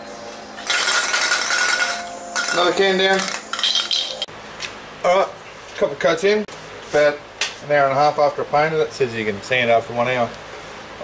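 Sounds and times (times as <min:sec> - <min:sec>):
metal spray can clattering: 0:00.6 - 0:04.2.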